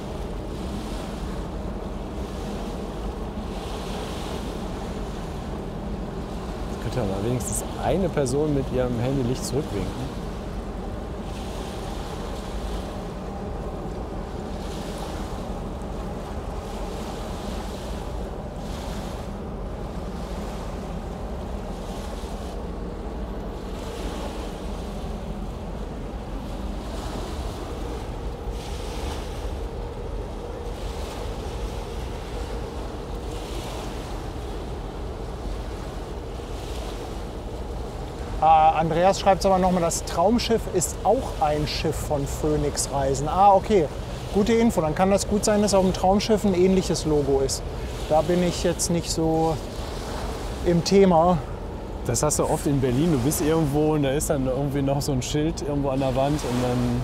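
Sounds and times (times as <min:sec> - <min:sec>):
ship low drone: 0:00.0 - 0:57.0
small waves washing onto beach: 0:00.0 - 0:57.0
wind rumble on microphone: 0:00.0 - 0:57.0.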